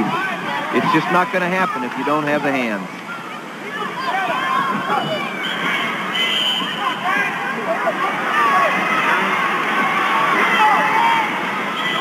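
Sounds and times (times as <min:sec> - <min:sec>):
crowd shouting and calling out: 0:00.0 - 0:12.0.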